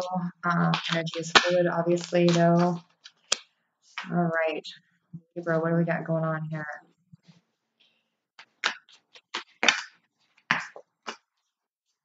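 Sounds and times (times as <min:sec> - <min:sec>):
cards shuffling with snaps: 0:00.7 - 0:04.1, 0:08.4 - 0:11.3.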